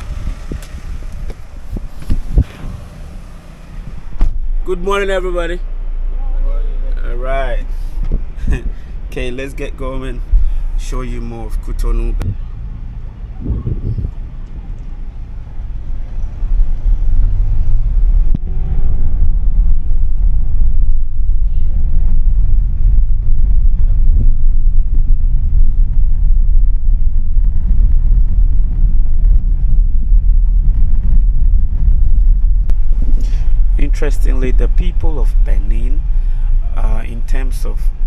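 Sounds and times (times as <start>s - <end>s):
vehicle driving rumble: 0.0s - 38.0s.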